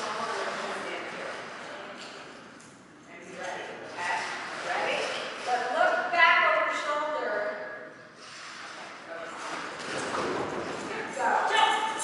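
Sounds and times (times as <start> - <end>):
indistinct talking in echoing hall: 0.0 - 12.0.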